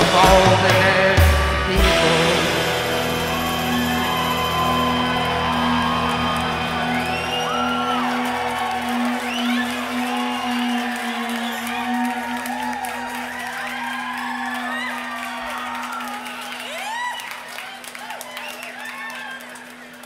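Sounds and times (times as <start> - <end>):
band holding drone note: 1.6 - 16.8
audience whooping and whistling: 2.6 - 20.0.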